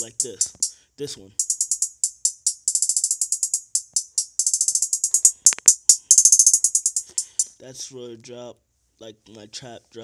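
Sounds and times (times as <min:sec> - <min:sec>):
hi-hat rolls: 0:00.0 - 0:00.7, 0:01.4 - 0:07.6.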